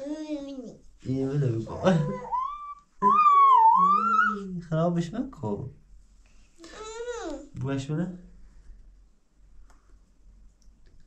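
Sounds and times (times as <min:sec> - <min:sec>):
toddler squealing: 0:01.8 - 0:04.5.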